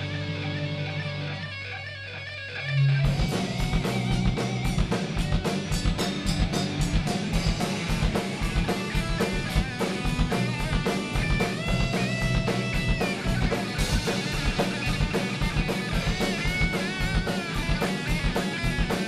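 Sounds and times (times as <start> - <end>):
bass guitar: 0.0 - 19.0
electric guitar lead: 0.0 - 19.0
drum kit beats: 3.0 - 19.0.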